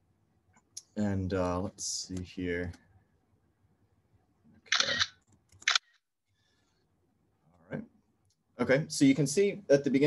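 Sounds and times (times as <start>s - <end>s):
person speaking: 0.7s - 2.9s.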